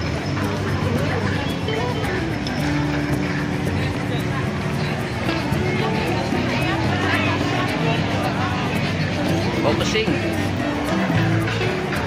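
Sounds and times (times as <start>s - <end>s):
crowd talking: 0.0s - 12.0s
music with low notes: 0.0s - 12.0s.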